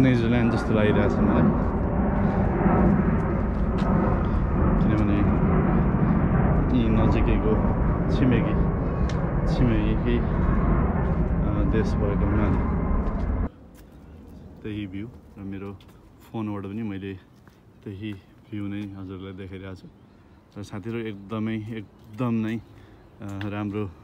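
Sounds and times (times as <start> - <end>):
wind rushing over microphone: 0.0 - 13.6.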